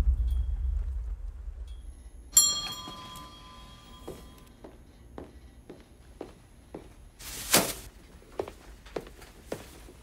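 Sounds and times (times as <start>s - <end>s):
low rumble: 0.0s - 2.4s
shop door bell ringing: 2.3s - 4.5s.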